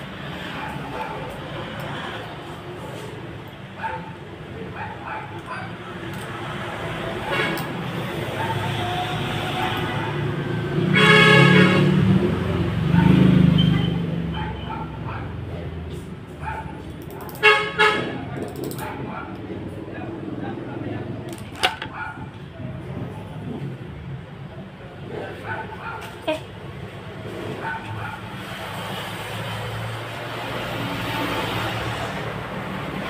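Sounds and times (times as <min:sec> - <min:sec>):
vehicle horn tooting: 0:10.9 - 0:12.0, 0:17.4 - 0:18.2.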